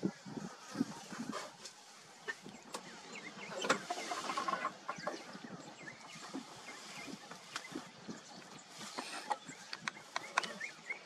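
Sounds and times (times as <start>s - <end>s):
bird calls: 0.0s - 11.0s.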